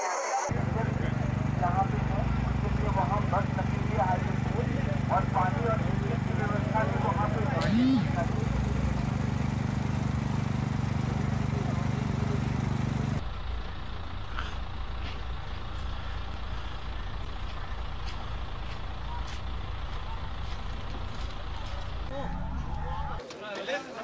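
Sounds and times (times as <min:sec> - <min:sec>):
low engine hum: 0:00.5 - 0:23.2
crowd with faint voices: 0:21.6 - 0:24.0.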